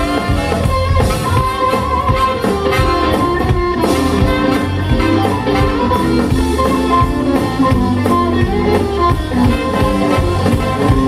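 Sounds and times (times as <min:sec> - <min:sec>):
blues band playing: 0:00.0 - 0:11.0.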